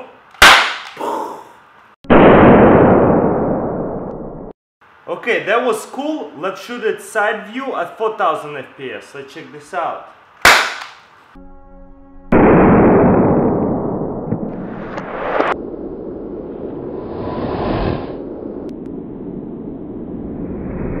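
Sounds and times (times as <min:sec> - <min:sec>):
explosion-like burst: 0:02.1 - 0:04.6, 0:12.3 - 0:16.8
rising whoosh: 0:12.3 - 0:21.0
rumbling noise: 0:12.3 - 0:21.0.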